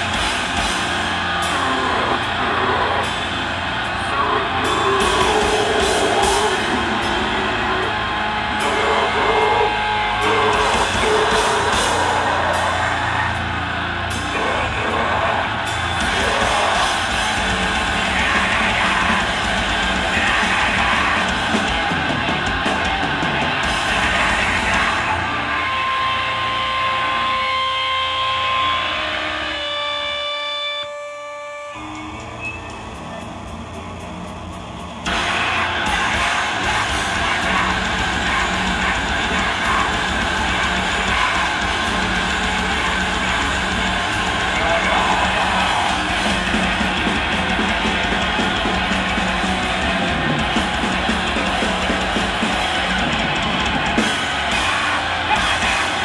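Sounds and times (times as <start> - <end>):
yelled vocals: 0.0 - 29.8, 35.0 - 56.0
guitar feedback: 0.0 - 56.0
heavy metal band playing: 0.0 - 56.0.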